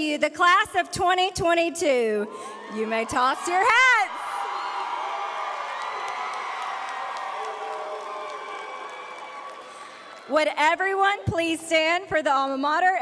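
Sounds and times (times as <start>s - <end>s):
crowd cheering with whoops: 2.3s - 10.3s.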